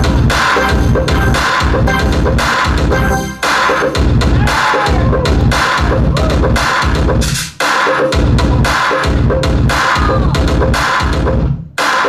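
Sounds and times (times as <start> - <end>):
dance music with heavy beat: 0.0 - 12.0.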